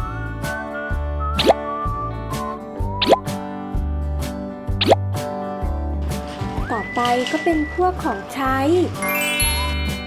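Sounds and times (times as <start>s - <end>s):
playful music with bass line: 0.0s - 10.0s
rising pop sound effect: 1.3s - 1.6s, 2.9s - 3.4s, 4.8s - 5.0s.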